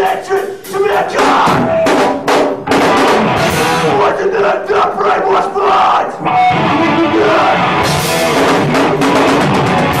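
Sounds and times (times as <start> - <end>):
distorted guitar note: 2.7 - 4.0, 6.2 - 10.0.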